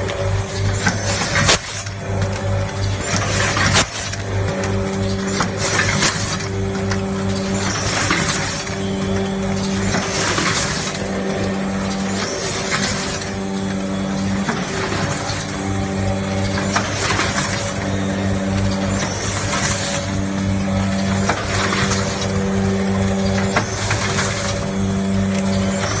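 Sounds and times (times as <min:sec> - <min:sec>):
electric buzz of packing machine: 0:00.0 - 0:26.0
machine hiss: 0:05.0 - 0:26.0.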